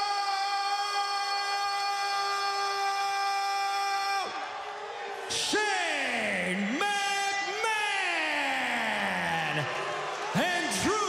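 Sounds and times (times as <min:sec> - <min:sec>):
announcer's amplified drawn-out voice: 0:05.3 - 0:11.0.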